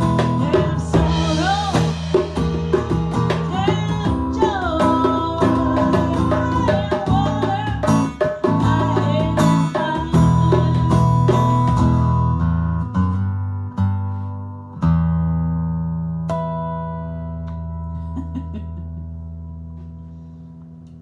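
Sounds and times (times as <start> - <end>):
djembe played by hand: 0.0 - 12.2
acoustic guitar strummed: 0.0 - 18.1.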